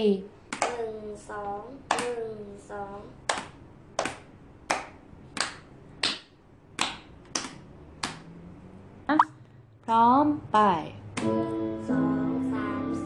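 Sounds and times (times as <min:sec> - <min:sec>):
child clapping hands: 0:00.5 - 0:00.9, 0:01.8 - 0:02.2, 0:03.2 - 0:08.2.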